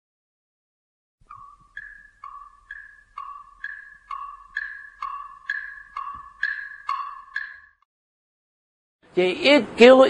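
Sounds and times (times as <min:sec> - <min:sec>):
two-note chime: 0:01.3 - 0:07.8.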